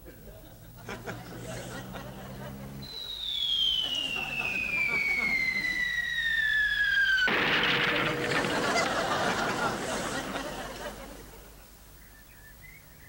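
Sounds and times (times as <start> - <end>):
falling bomb whistle: 2.8 - 10.3
explosion blast: 7.3 - 10.5.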